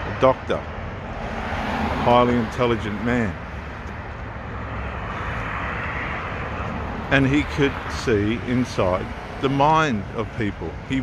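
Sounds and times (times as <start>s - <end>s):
vehicle passing with road noise: 0.0s - 11.0s.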